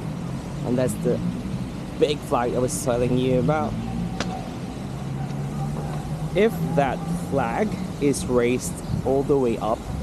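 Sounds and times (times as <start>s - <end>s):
road traffic: 0.0s - 10.0s.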